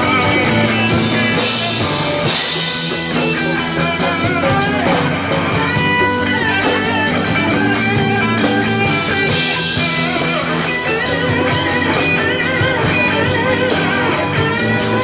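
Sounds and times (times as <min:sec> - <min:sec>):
electric guitar bending notes: 0:00.0 - 0:15.0
rock band playing: 0:00.0 - 0:15.0.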